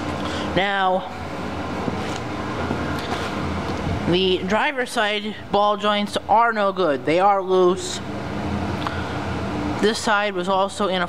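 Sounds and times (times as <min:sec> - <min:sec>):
low mechanical hum: 0:00.0 - 0:11.0.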